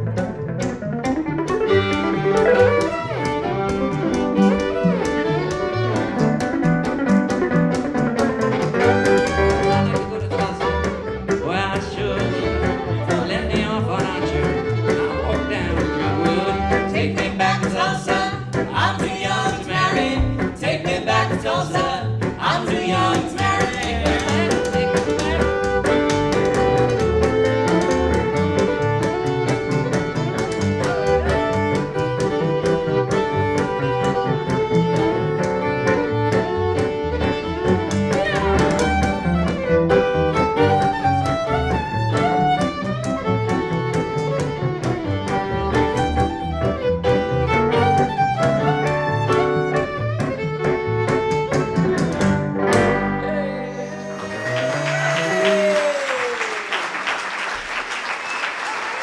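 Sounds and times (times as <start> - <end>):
plucked upright bass: 0.0 - 54.3
guitar rhythm: 0.0 - 55.3
fiddle playing lead: 0.0 - 56.2.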